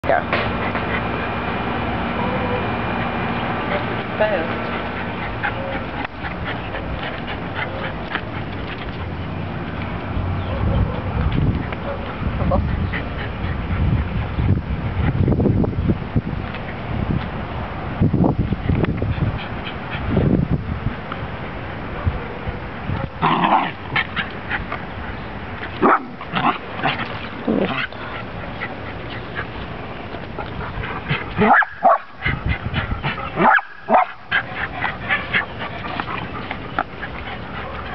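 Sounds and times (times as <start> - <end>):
outdoor background hum: 0.0 - 37.9
dog barking: 10.4 - 12.1, 31.4 - 32.0, 33.4 - 34.2.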